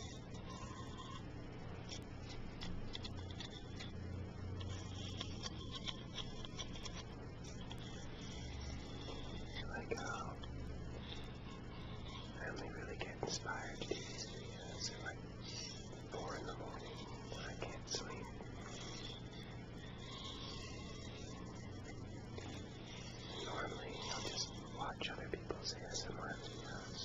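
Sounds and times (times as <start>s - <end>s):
steady low hum: 0.0s - 27.0s
background hiss: 7.4s - 27.0s
man whispering: 8.3s - 10.6s, 11.5s - 19.3s, 21.2s - 27.0s.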